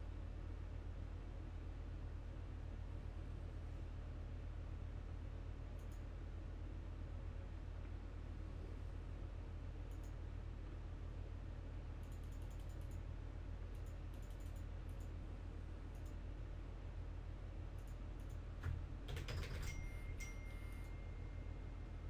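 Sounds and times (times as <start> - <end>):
low electrical hum: 0.0 - 22.0
computer keyboard typing: 12.1 - 13.0, 13.8 - 15.1, 17.8 - 20.1.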